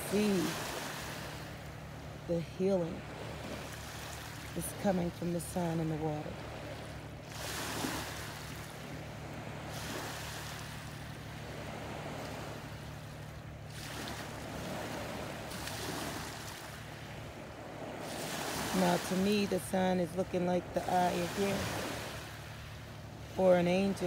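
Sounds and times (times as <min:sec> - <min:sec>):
water lapping around a boat: 0:00.0 - 0:24.0.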